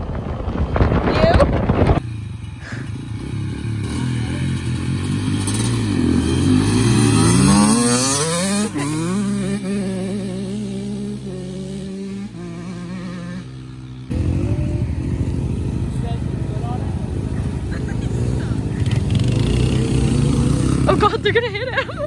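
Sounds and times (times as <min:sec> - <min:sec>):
dirt bike engines accelerating: 0:00.0 - 0:22.0.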